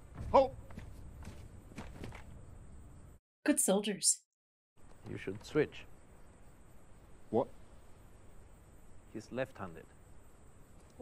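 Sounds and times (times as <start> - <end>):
boots marching on turf: 0.0 - 2.3.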